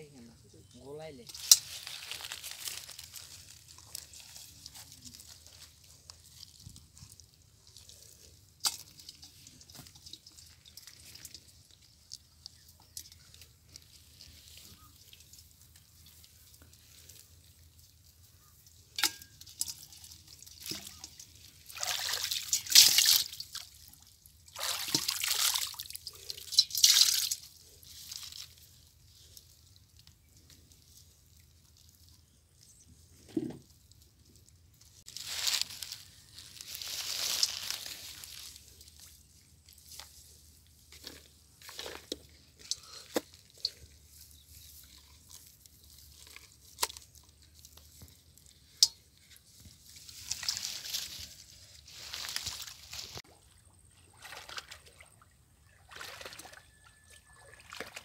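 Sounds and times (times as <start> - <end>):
water dripping and splashing: 1.3 - 32.1, 33.7 - 51.4, 52.1 - 58.0.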